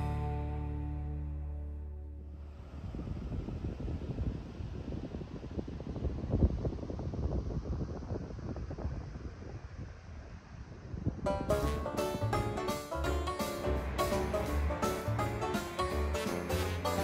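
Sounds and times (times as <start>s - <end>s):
wind buffeting microphone: 2.4s - 17.0s.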